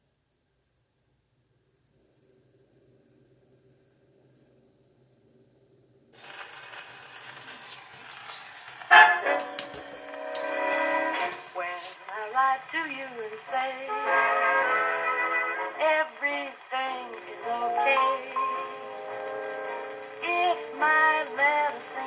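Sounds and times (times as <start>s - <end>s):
faint hum: 0.0s - 22.0s
phonograph needle surface hiss: 0.0s - 22.0s
dance band playing: 8.9s - 12.6s.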